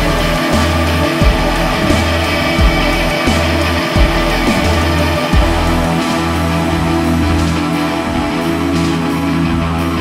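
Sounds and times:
instrumental music with heavy bass: 0:00.0 - 0:10.0.

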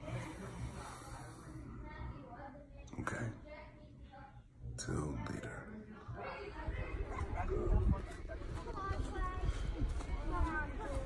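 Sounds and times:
distant children's voices: 0:00.0 - 0:11.0
wind rumble on microphone: 0:06.6 - 0:11.0.

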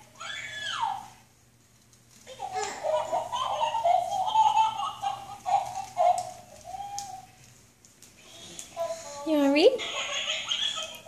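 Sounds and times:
baby cooing: 0:02.3 - 0:07.4.

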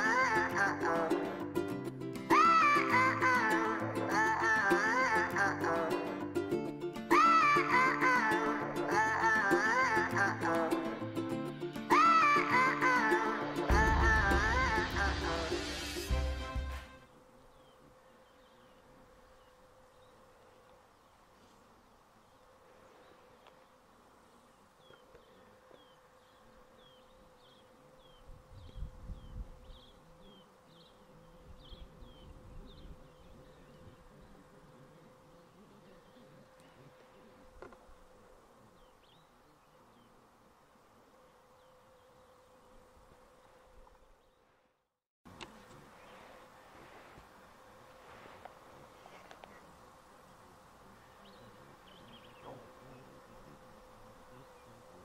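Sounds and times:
insect buzz: 0:00.0 - 0:55.0
low rumbles: 0:13.7 - 0:15.6.

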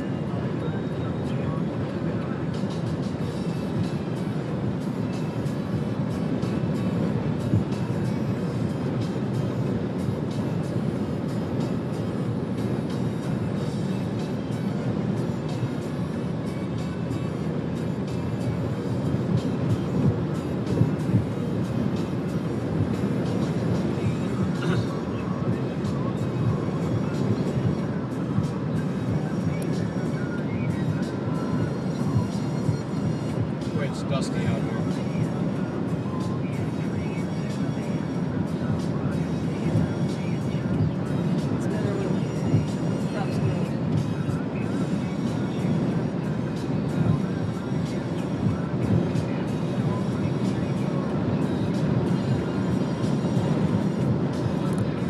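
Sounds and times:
car road noise: 0:00.0 - 0:55.0
music playing: 0:00.0 - 0:55.0.

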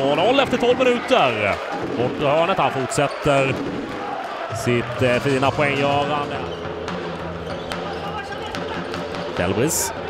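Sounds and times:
crowd and hall noise: 0:00.0 - 0:10.0.

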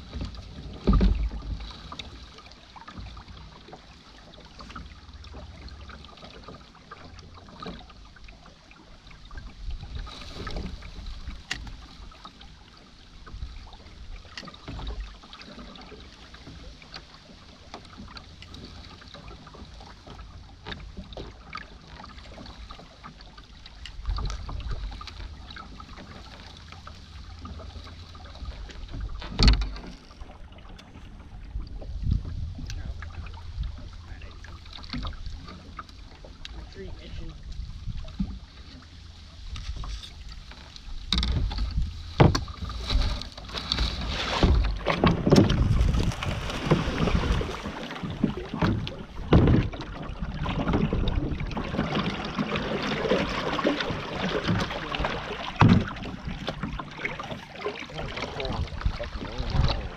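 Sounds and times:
boat knocking against reeds: 0:00.0 - 0:08.4, 0:09.2 - 0:59.9
wind gusting on microphone: 0:44.0 - 0:49.4.

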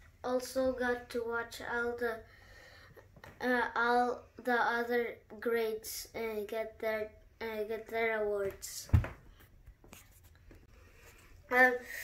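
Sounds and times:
low thump: 0:08.9 - 0:09.2.

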